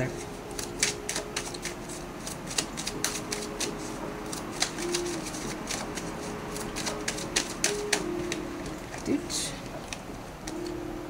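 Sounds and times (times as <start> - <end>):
cards being shuffled: 0.0 - 9.2.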